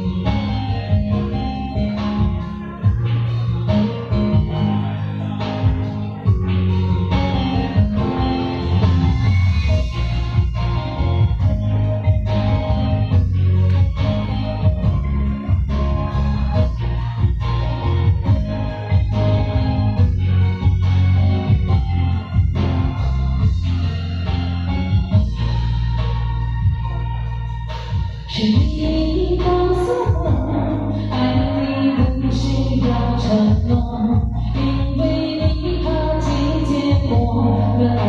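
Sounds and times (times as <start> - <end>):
pop karaoke backing track: 0.0 - 38.0.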